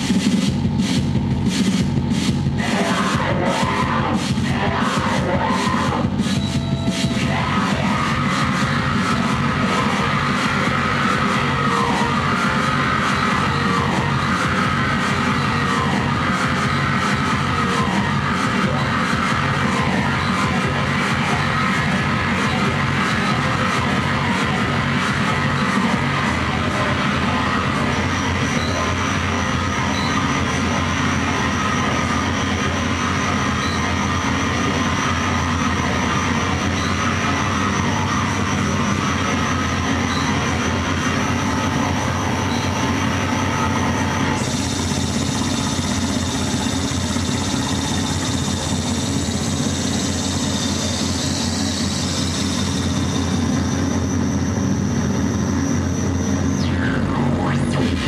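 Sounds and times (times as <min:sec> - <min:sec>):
low drone: 0:00.0 - 0:58.0
wall of electronic noise: 0:00.0 - 0:58.0.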